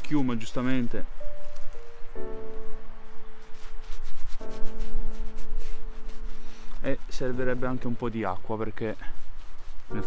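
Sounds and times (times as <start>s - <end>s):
background music of sustained chords: 0.0s - 10.0s
shaving brush scrubbing stubble: 3.4s - 10.0s.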